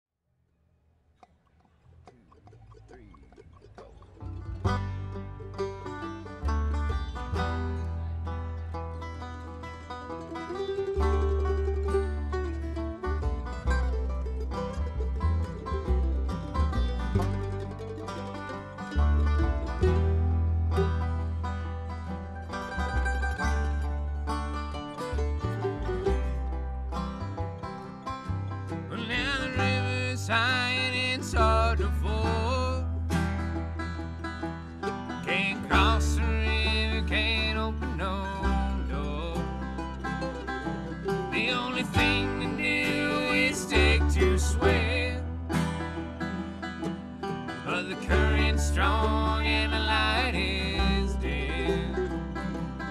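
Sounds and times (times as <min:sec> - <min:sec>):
bluegrass string band playing: 0:02.0 - 0:52.9
person singing: 0:28.9 - 0:32.8, 0:35.2 - 0:39.6, 0:41.2 - 0:45.3, 0:47.6 - 0:52.2.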